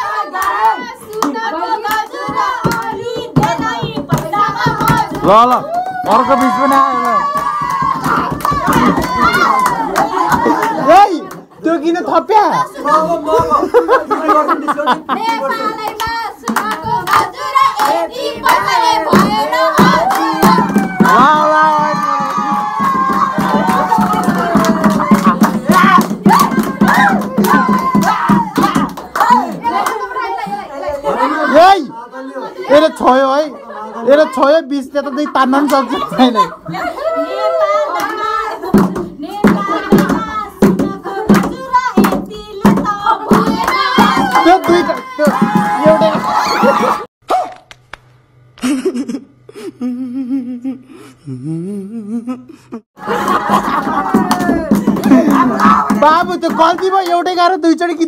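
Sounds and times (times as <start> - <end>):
group clapping hands: 0.0 - 11.5, 15.0 - 30.6, 35.6 - 36.0, 37.9 - 48.2, 53.0 - 57.3
voices singing along: 0.0 - 11.6, 12.3 - 47.1, 53.0 - 56.9
young people talking and laughing: 0.0 - 47.1, 52.7 - 58.0
sharp hand claps: 15.3 - 30.0, 53.3 - 57.2.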